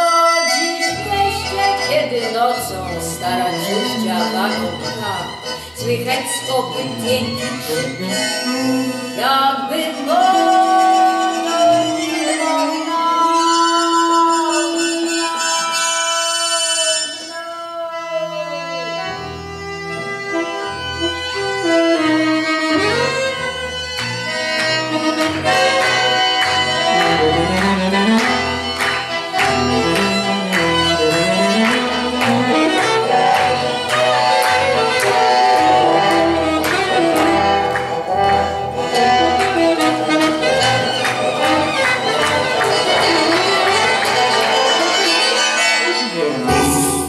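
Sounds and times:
low rhythmic accompaniment: 0:00.0 - 0:15.8, 0:17.2 - 0:47.0
guitar: 0:00.0 - 0:47.0
saxophone with vibrato: 0:00.0 - 0:47.0.

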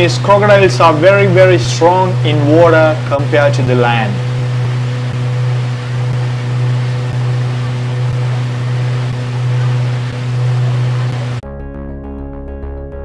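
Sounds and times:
boat engine drone: 0:00.0 - 0:11.4.

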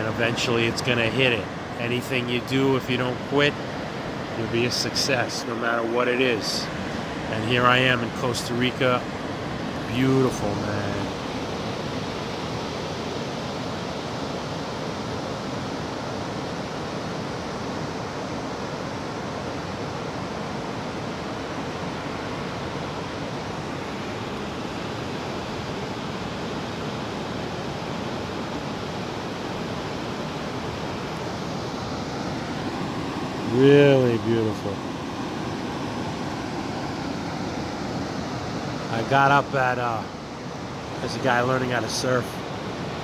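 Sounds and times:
ocean waves breaking on beach: 0:00.0 - 0:43.0.

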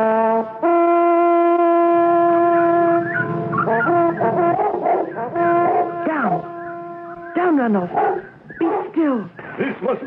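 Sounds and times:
animal howls: 0:02.5 - 0:07.1.

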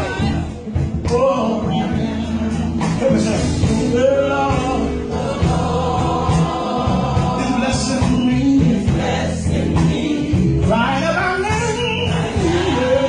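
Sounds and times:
instrumental accompaniment: 0:00.0 - 0:13.0
man singing into a microphone: 0:01.0 - 0:05.1, 0:07.3 - 0:09.0.

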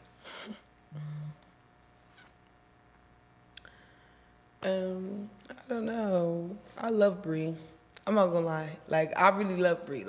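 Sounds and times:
person humming: 0:00.2 - 0:01.5.

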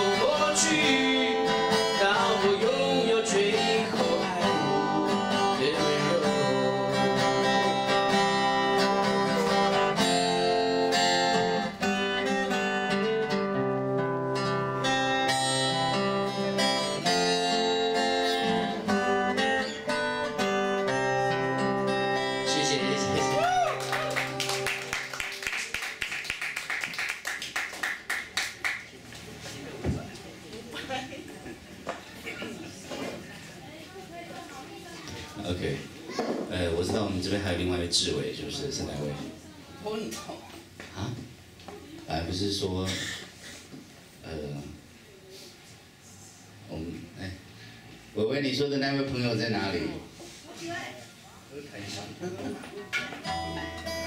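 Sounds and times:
acoustic guitar playing: 0:00.0 - 0:26.0, 0:52.8 - 0:54.0
people clapping: 0:23.1 - 0:29.4.

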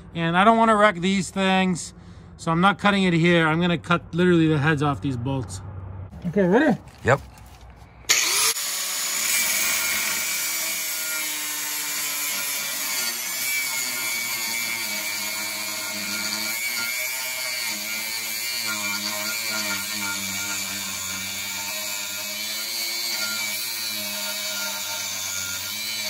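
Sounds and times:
angle grinder cutting steel: 0:08.1 - 0:26.0.

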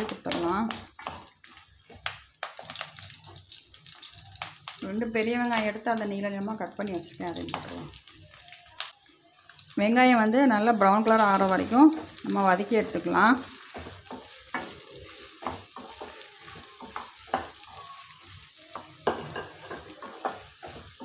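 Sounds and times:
frying oil hissing: 0:00.0 - 0:21.0
wooden spatula scraping a pan: 0:11.1 - 0:21.0.

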